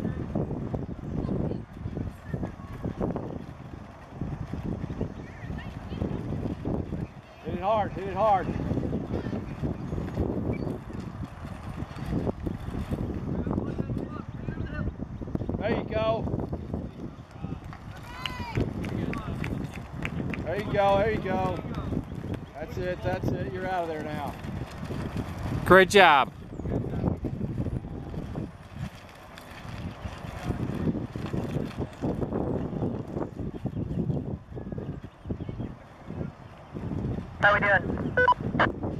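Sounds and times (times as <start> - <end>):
wheels rumbling on gravel and rock: 0.0 - 38.9
wind buffeting microphone: 0.0 - 38.9.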